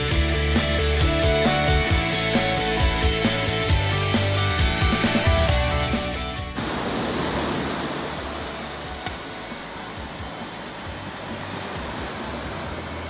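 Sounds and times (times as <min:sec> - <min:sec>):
rock music: 0:00.0 - 0:06.6
surf washing up a beach: 0:06.5 - 0:13.0.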